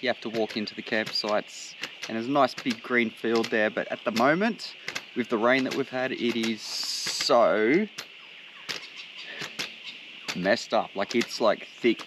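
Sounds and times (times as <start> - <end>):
faint high hum: 0.0 - 12.0.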